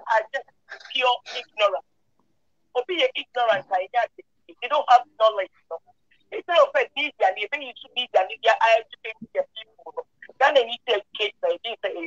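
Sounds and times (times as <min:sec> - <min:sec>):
person talking over video call: 0:00.0 - 0:01.9, 0:02.7 - 0:12.0.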